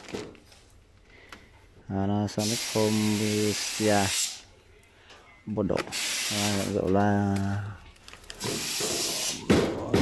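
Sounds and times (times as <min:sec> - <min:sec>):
plastic wrapping rustling: 0:00.0 - 0:01.2, 0:06.4 - 0:09.3.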